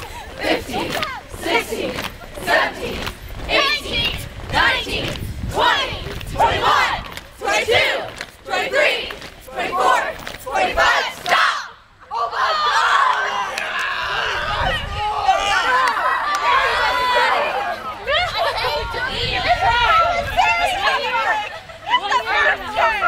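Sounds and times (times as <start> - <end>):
crowd chattering: 0.0 - 23.0.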